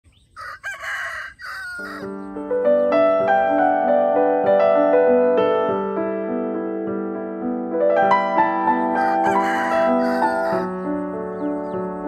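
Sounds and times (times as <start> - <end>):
rooster crowing: 0.3 - 2.2, 8.8 - 10.8
music: 2.0 - 12.0.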